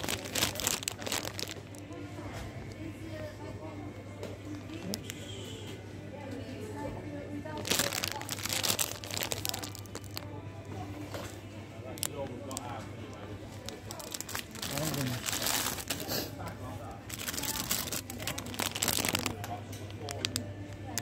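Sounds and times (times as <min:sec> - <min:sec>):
plastic packet crinkling: 0:00.0 - 0:02.9, 0:04.4 - 0:05.3, 0:07.5 - 0:10.3, 0:11.1 - 0:16.1, 0:16.9 - 0:21.0.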